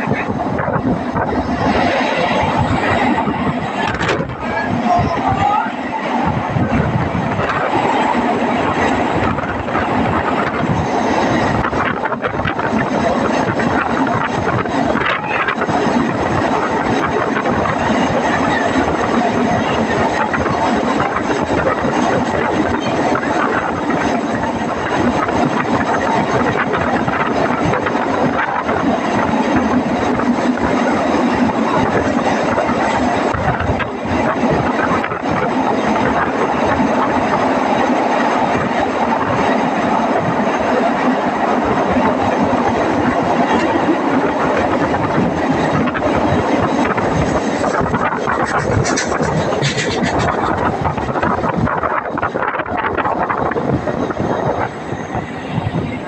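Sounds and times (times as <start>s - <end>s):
air rushing in tunnel: 0.0s - 56.0s
train wheels rumbling on rails: 0.0s - 56.0s.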